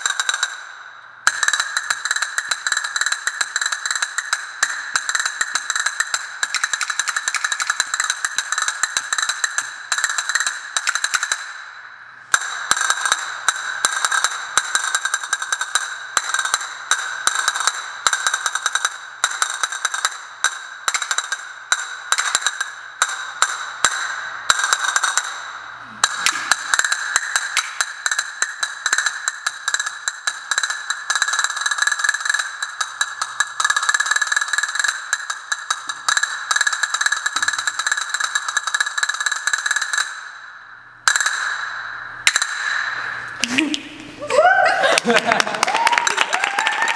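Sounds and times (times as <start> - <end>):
castanets rolls and clicks: 1.3 - 11.5, 12.3 - 25.4, 26.0 - 40.3.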